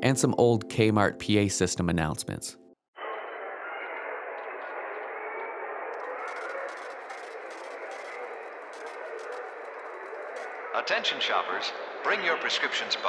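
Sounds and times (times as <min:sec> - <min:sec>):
crowd murmur: 0:03.0 - 0:11.0.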